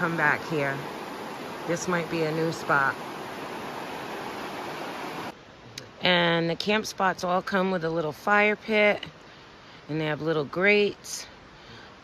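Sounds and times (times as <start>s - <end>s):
river rushing over rocks: 0.0s - 5.4s.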